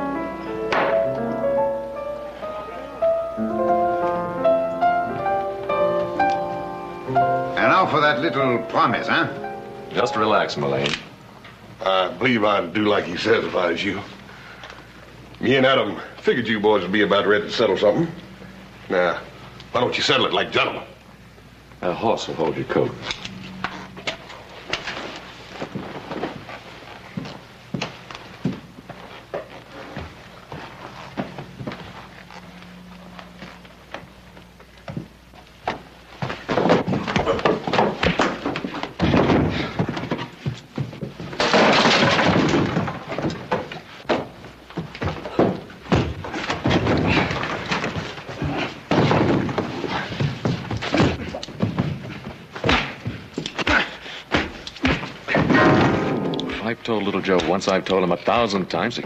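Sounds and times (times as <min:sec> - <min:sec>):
punches and thuds: 0:45.0 - 0:56.3
crashes and slams: 0:55.3 - 0:56.3.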